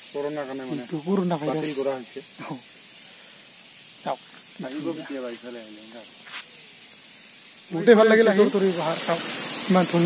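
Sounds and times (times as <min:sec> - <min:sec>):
steady hiss: 0:00.0 - 0:10.0
man talking: 0:00.1 - 0:02.6, 0:04.0 - 0:06.1, 0:07.7 - 0:10.0.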